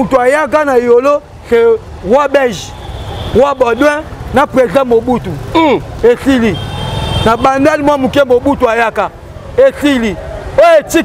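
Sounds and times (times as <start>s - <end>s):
man talking loudly: 0.0s - 11.0s.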